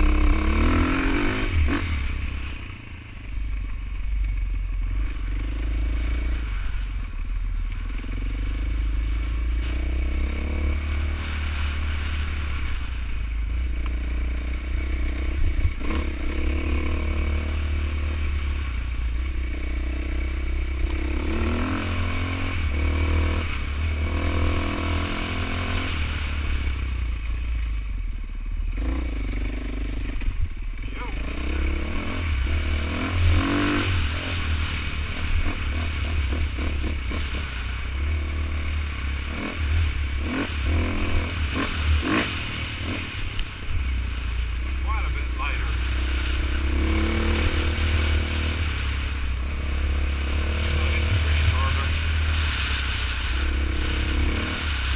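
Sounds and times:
dirt bike engine revving: 0:00.0 - 0:27.3, 0:28.7 - 0:54.9.

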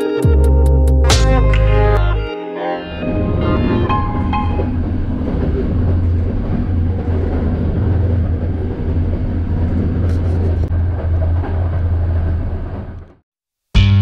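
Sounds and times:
train rumbling on rails: 0:03.0 - 0:13.2.

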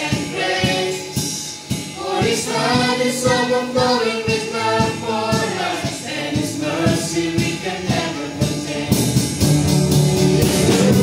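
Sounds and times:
small choir singing: 0:00.0 - 0:01.4, 0:02.0 - 0:09.4
steady beat: 0:00.0 - 0:11.0
bass guitar: 0:04.7 - 0:11.0.

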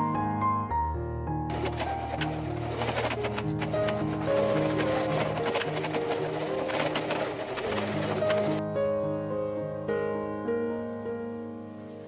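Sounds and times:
sewing machine stitching: 0:01.5 - 0:08.6.

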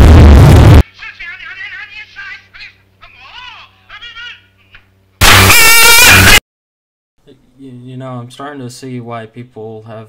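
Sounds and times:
loud distorted high-pitched blast: 0:00.0 - 0:00.8, 0:05.2 - 0:06.4.

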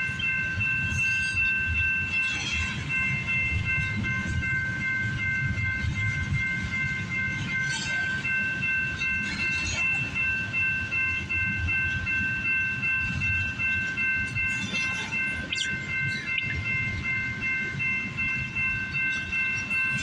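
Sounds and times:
crossing bell ringing: 0:00.0 - 0:20.0
train wheels rumbling on rail: 0:00.0 - 0:20.0.

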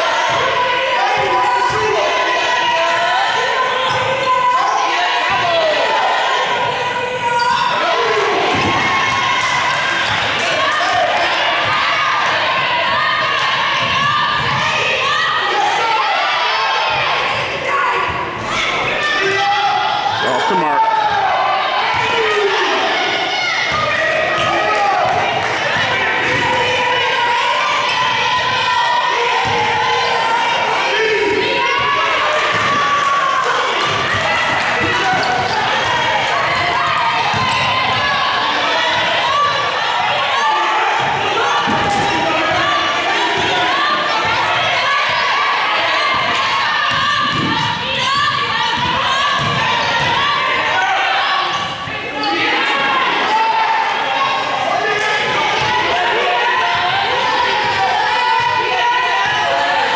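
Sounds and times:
people calling and shouting: 0:00.0 - 0:59.9.

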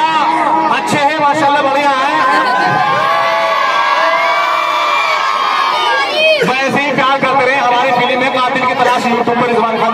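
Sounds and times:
crowd cheering with long shout: 0:02.0 - 0:06.6.

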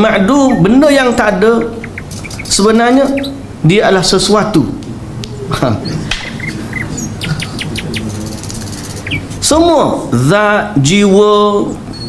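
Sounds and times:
insects chirping and trilling: 0:00.4 - 0:03.4.

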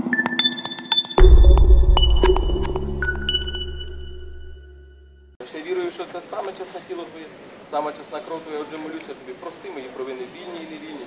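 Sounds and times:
deep bass hit: 0:01.2 - 0:05.4.

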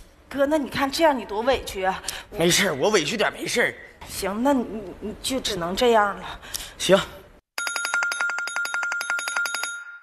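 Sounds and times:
phone ringing with bell ringtone: 0:07.6 - 0:10.0.

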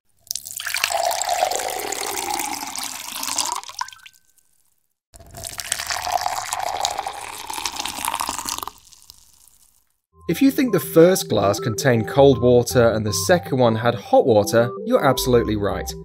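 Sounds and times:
water pouring into a glass: 0:00.2 - 0:04.4, 0:05.2 - 0:09.8.

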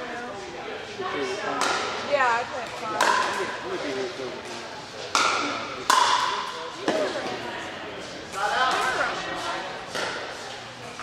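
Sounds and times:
paddle striking plastic ball: 0:05.2 - 0:06.3.

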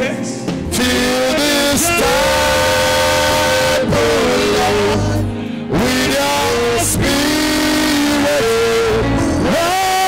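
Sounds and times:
congregation singing along: 0:00.0 - 0:10.0
instrumental backing music: 0:00.0 - 0:10.0
man singing into microphone: 0:00.0 - 0:10.0.

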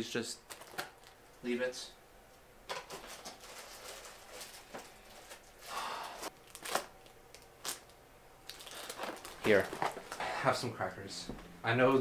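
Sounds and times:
crinkling noise: 0:02.8 - 0:05.7, 0:06.3 - 0:10.2.

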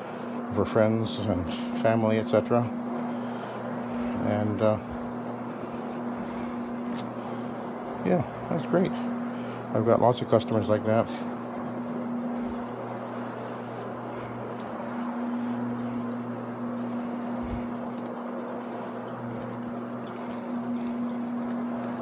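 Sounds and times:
rotary floor machine humming: 0:00.0 - 0:22.0.

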